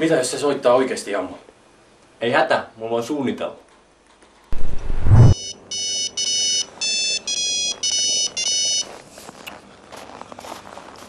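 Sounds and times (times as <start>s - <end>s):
loud low burst of noise: 4.6s - 5.4s
mobile phone electronic ringtone: 5.3s - 8.9s.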